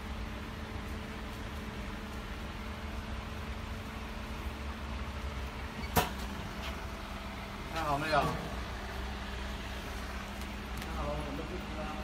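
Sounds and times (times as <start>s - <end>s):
packing machine humming: 0.0s - 12.0s.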